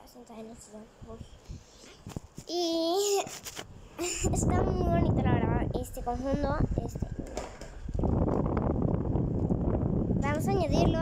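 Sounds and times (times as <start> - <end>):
air rushing over microphone: 3.2 - 11.0.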